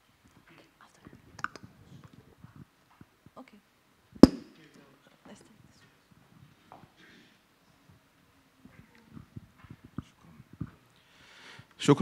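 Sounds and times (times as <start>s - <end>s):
low murmur of voices: 4.4s - 11.1s.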